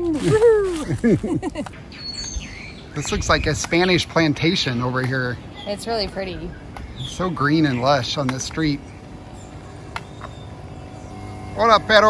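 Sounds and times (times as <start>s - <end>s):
low steady street hum: 0.0s - 12.0s.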